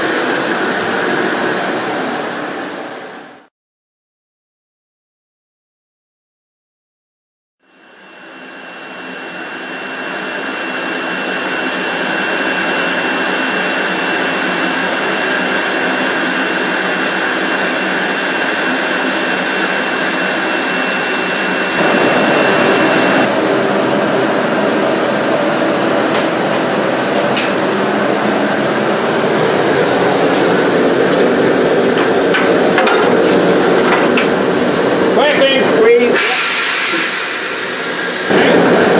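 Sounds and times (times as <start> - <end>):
loud rushing hiss: 0.0 - 3.4, 9.0 - 38.9.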